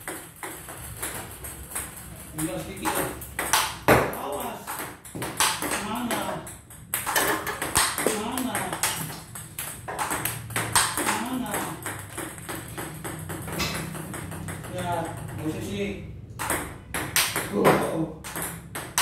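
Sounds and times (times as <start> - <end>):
table tennis ball clicking: 0.1 - 3.9, 4.6 - 15.4, 16.4 - 17.5.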